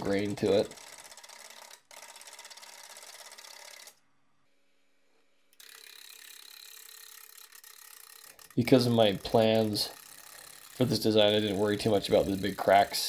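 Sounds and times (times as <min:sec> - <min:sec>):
wood lathe cutting wood: 0:08.2 - 0:13.0.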